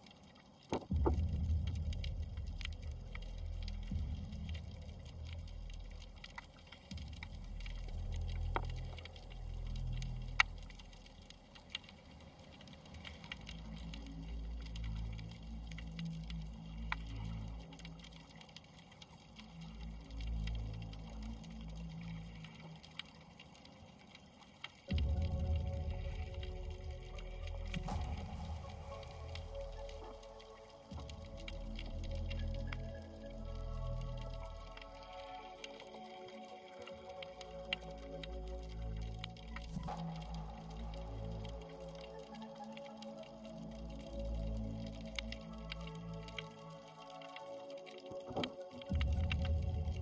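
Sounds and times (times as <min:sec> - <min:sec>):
faint underwater clicks: 0:00.0 - 0:50.0
underwater rumble of moving water: 0:00.0 - 0:50.0.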